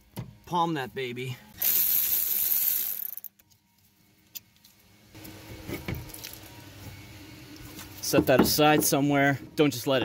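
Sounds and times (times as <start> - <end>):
cordless ratchet wrench: 1.6 - 3.3.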